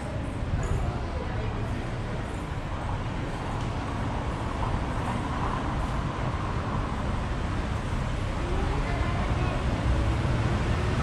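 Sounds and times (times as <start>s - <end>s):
cars passing on road: 0.0s - 11.0s.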